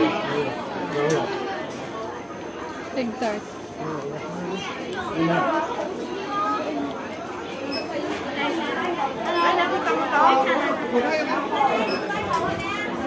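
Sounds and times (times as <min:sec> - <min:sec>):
indistinct chatter of people: 0:00.0 - 0:13.0.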